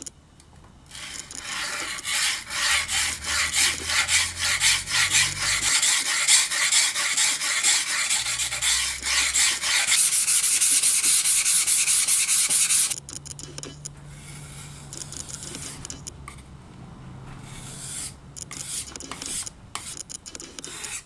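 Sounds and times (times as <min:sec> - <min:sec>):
steel scraping on sharpening stone: 0:01.0 - 0:13.0.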